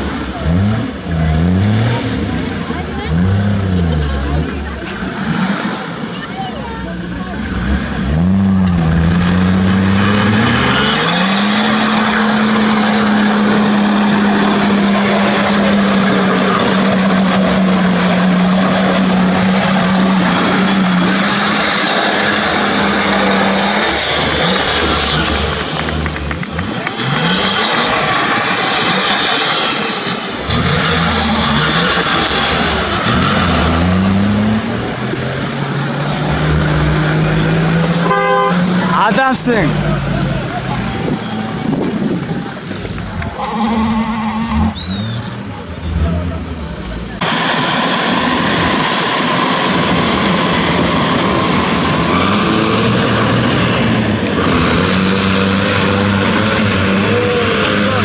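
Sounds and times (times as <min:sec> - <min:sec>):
tyres spinning through mud: 0:00.0 - 0:37.9, 0:38.7 - 0:58.0
engine revving under load: 0:00.0 - 0:58.0.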